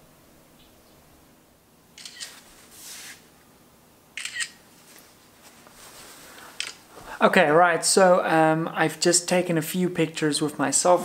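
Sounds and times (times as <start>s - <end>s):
phone camera shutter clicks: 2.0s - 2.4s, 4.2s - 4.6s.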